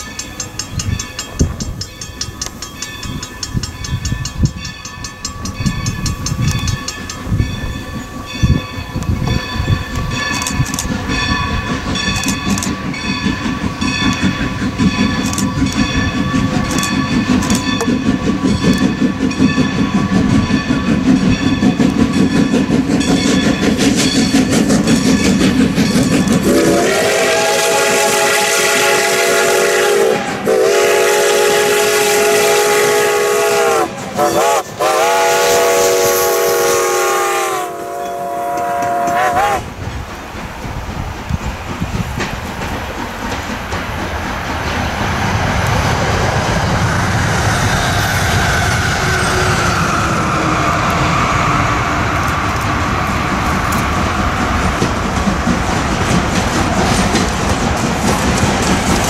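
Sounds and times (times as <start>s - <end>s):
steam locomotive chugging: 0.0s - 59.0s
steam whistle blasts: 26.4s - 39.7s.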